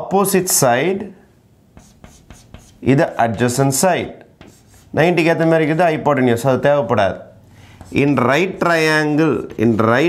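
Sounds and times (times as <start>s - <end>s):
man talking: 0.0s - 1.2s, 2.8s - 4.2s, 4.9s - 7.3s, 7.9s - 10.0s
chalk writing on blackboard: 1.7s - 3.8s, 4.4s - 5.0s, 7.7s - 10.0s.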